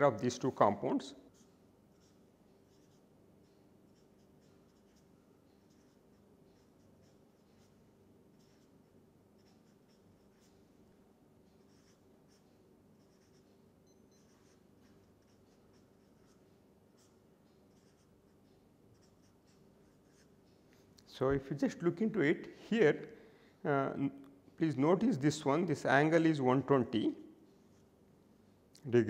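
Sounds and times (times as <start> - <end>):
marker pen writing on paper: 1.3 - 10.6, 11.4 - 20.8.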